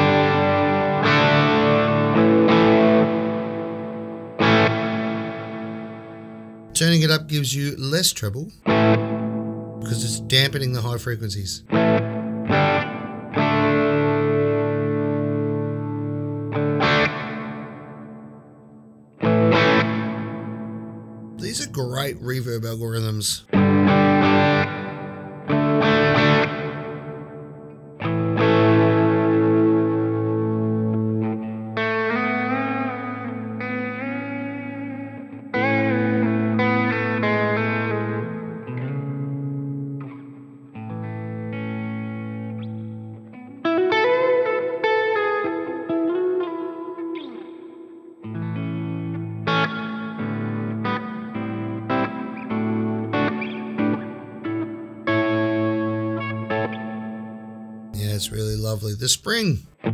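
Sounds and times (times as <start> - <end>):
clean electric guitar with reverb: 0.0 - 59.9.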